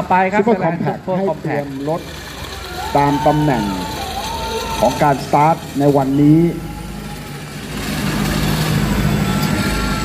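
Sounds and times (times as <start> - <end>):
truck engines running: 0.0 - 10.0.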